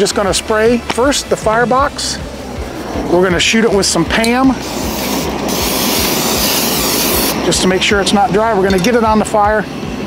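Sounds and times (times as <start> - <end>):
aerosol cooking spray hissing: 4.6 - 7.4.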